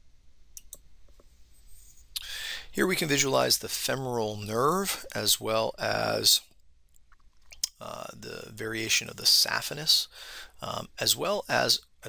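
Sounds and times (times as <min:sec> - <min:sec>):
low steady hum: 0:00.0 - 0:12.0
faint sharp clicks: 0:00.6 - 0:01.3.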